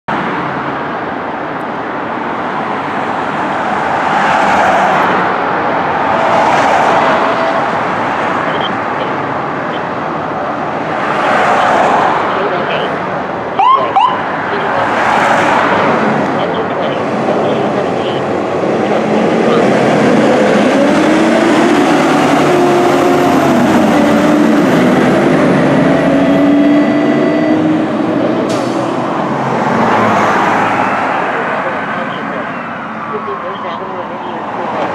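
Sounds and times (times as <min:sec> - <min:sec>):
fire truck engine: 0:00.1 - 0:34.9
street traffic: 0:00.1 - 0:34.9
short rising siren chirp: 0:20.8 - 0:29.2.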